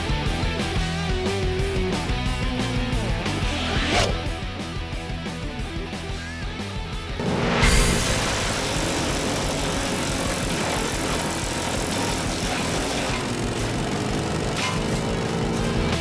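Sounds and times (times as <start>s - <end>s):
wood chipper shredding branch: 7.2s - 16.0s.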